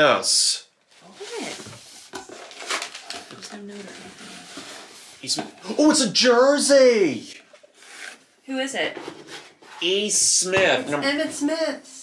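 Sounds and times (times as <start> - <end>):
packaging rustling and crinkling: 0.9 - 5.3.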